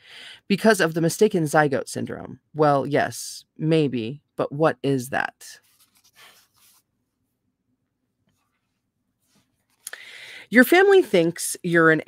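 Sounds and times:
faint soft rustle: 5.6s - 7.4s, 8.2s - 9.8s.

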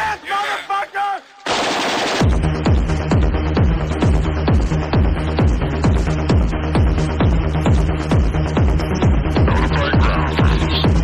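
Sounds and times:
electronic music: 1.3s - 11.0s
gunfire-like noise burst: 1.5s - 2.4s
kick drum beat: 2.2s - 11.0s.

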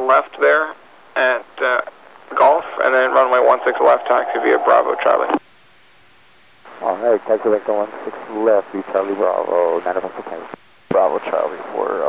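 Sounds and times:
voice over radio: 0.0s - 5.4s
faint steady hiss: 0.0s - 12.0s.

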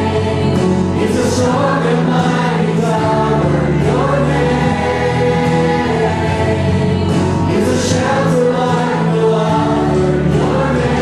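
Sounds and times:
choir singing church music: 0.0s - 11.0s
instrumental accompaniment: 0.0s - 11.0s.

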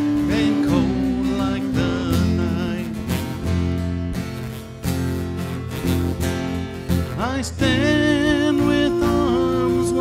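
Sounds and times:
acoustic band playing country-folk: 0.0s - 10.0s.

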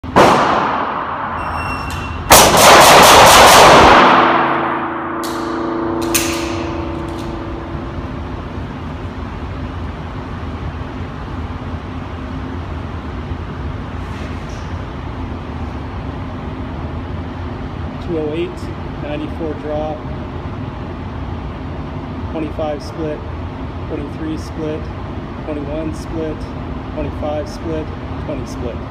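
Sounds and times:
loud sound: 0.0s - 9.3s
low hum: 0.0s - 28.9s
rapid pistol shots: 0.1s - 1.2s, 2.3s - 4.5s
shot timer beep: 1.4s - 2.2s
steel targets ringing: 3.8s - 9.0s.

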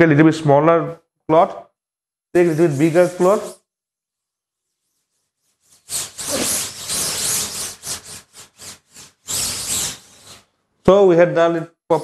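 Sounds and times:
cloth scrubbing on mesh: 4.6s - 10.5s.

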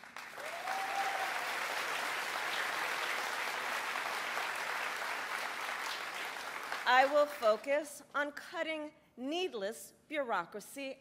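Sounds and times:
crowd applauding: 0.0s - 7.4s.

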